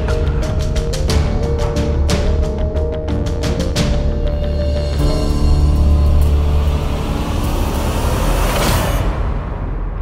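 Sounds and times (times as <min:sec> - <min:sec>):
dramatic score with bass drone: 0:00.0 - 0:10.0.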